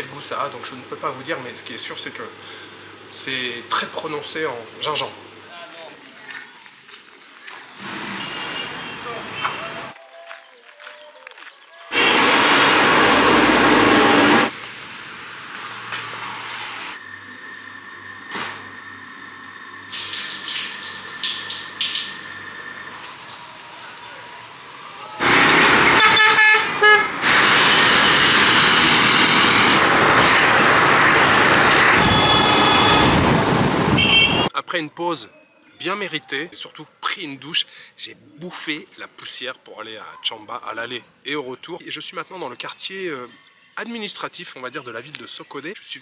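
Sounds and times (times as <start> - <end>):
voices: 3.1 - 6.8
loud traffic noise: 7.7 - 10.0, 11.9 - 20.1, 20.8 - 34.5
vehicle horns tooting: 7.8 - 9.9, 25.2 - 30.4, 31.7 - 34.5.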